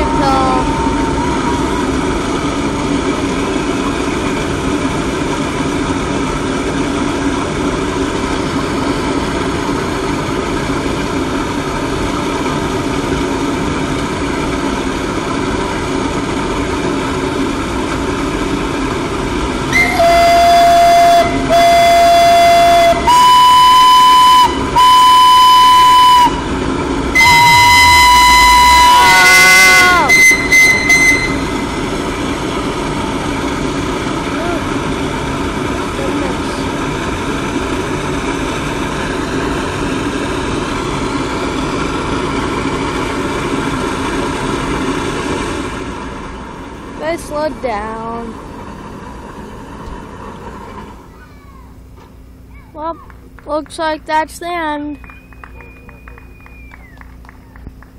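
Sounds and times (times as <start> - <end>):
steam stack rushing: 0.0 - 51.1
steam whistle blasts: 19.7 - 32.0.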